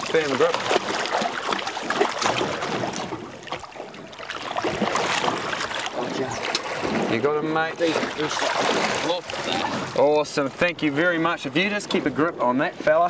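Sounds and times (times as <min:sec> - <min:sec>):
fish splashing in water: 0:00.0 - 0:07.2, 0:07.8 - 0:10.0.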